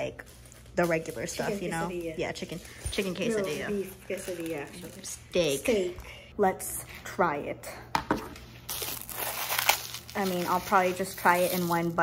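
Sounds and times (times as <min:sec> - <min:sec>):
food packaging rustling: 0:00.2 - 0:05.8, 0:08.7 - 0:12.0.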